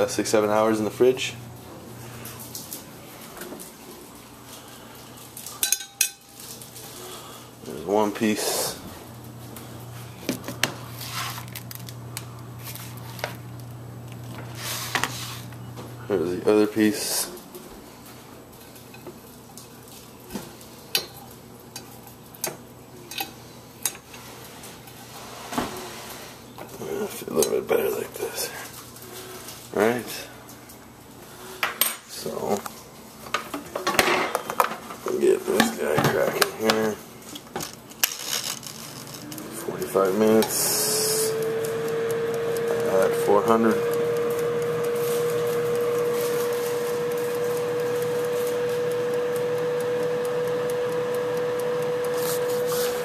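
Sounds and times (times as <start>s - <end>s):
steady low hum: 0.0s - 19.0s, 34.2s - 53.0s
fork clinking on dishes: 5.6s - 6.3s.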